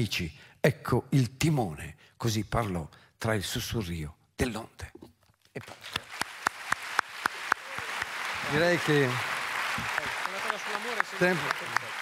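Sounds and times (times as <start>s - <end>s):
audience applause: 5.6s - 12.0s.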